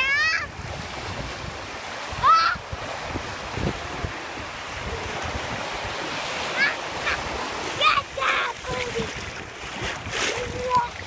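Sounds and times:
ocean surf breaking: 0:00.0 - 0:11.0.

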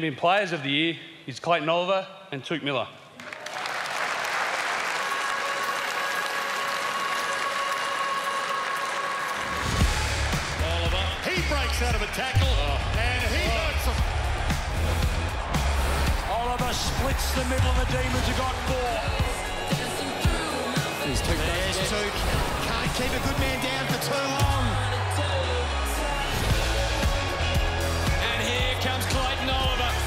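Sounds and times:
audience applauding: 0:03.2 - 0:30.0
bass-heavy music: 0:09.6 - 0:30.0
commentator's voice: 0:10.4 - 0:14.3, 0:16.1 - 0:26.5, 0:28.1 - 0:30.0.

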